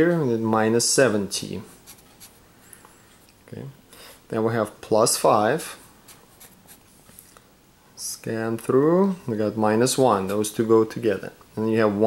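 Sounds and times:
marker writing on paper: 1.8 - 2.4, 6.0 - 6.8.

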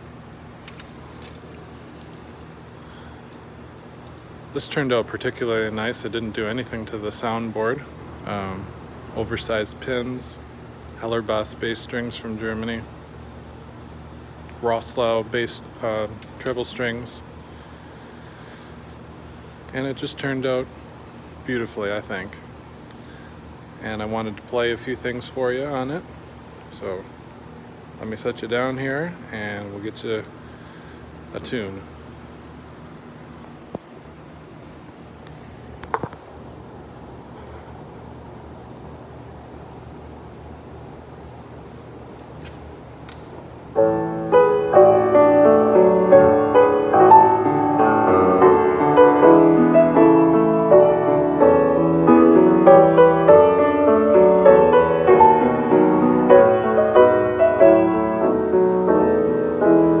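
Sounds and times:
low room hum: 0.0 - 60.0
grand piano melody: 43.7 - 60.0.

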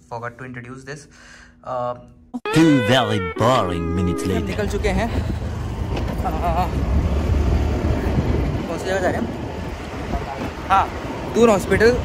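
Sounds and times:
wavering voice-like sound: 2.4 - 5.2
road and traffic noise: 4.5 - 12.0
wind buffeting microphone: 4.6 - 11.3.

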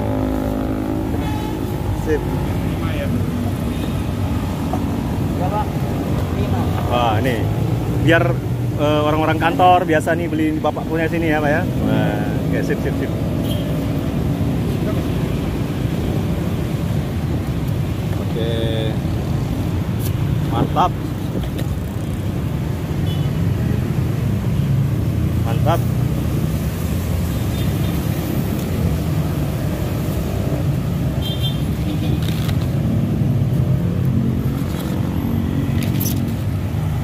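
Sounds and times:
motorcycle engines: 0.0 - 37.0
road traffic rumble: 0.0 - 37.0.

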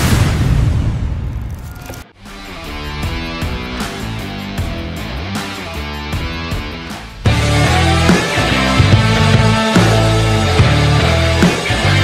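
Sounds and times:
deep rumbling boom impact: 0.0 - 1.6.

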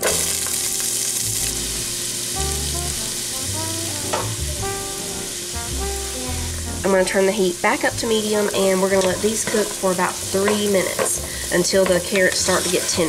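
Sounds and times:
vegetables sizzling in hot fat: 0.0 - 13.0.

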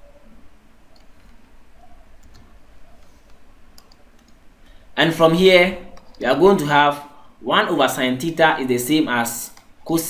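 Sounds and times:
low steady hum: 0.0 - 10.0
mouse and keyboard clicks: 0.9 - 1.5, 2.2 - 4.4, 5.9 - 6.2.

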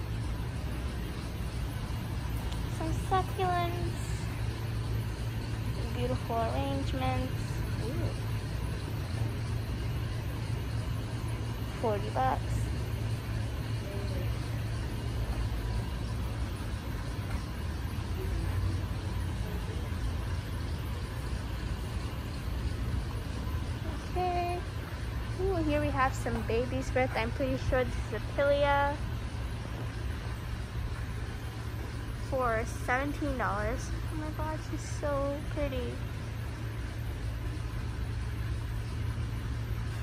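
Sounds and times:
low rumble with faint hiss: 0.0 - 40.0.

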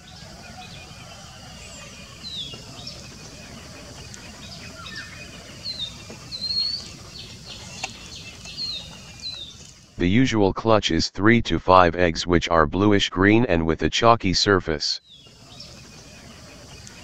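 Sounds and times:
small birds chirping: 0.0 - 10.0, 15.0 - 17.0.

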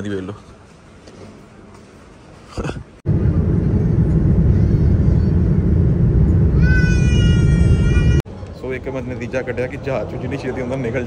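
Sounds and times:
high whining engine tone: 3.1 - 8.2
jet cabin low rumble: 3.1 - 8.2.

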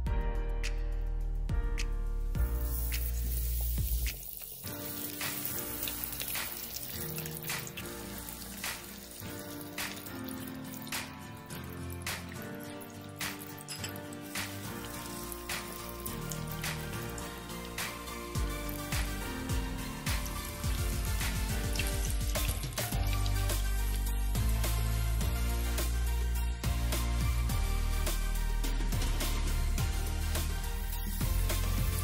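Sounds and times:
background music: 0.0 - 32.0
hot oil sizzling and popping: 2.4 - 27.2, 27.9 - 32.0.

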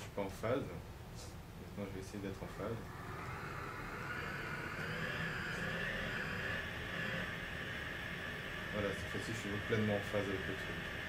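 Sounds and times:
synthesised noise-like sound: 2.3 - 11.0.

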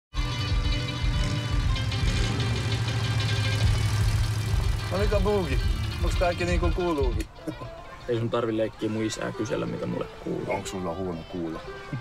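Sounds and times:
music: 0.1 - 12.0
truck engine idling: 0.3 - 7.3.

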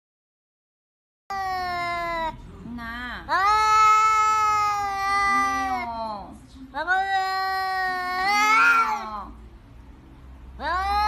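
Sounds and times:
cat meowing: 3.3 - 6.2, 6.8 - 9.4, 10.6 - 11.0.

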